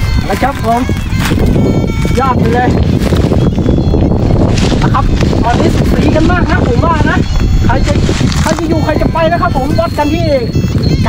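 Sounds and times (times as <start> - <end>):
wind buffeting microphone: 0.0 - 11.0
man speaking: 0.3 - 0.9, 4.8 - 10.5.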